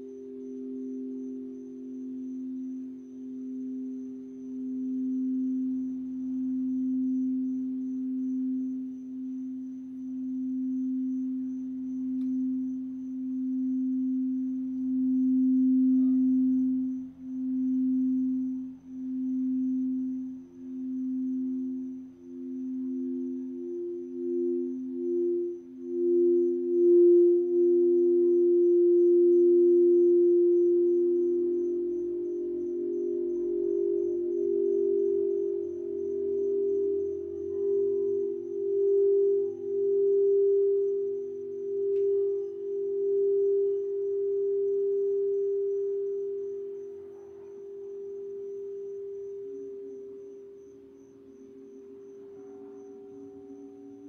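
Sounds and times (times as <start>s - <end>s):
higher singing bowl ringing: 0.0s - 54.0s
low singing bowl tone: 0.0s - 54.0s.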